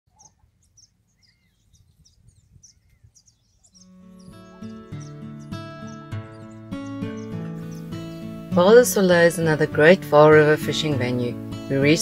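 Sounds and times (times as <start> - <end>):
birds chirping: 0.1 - 12.0
upbeat background music: 4.4 - 12.0.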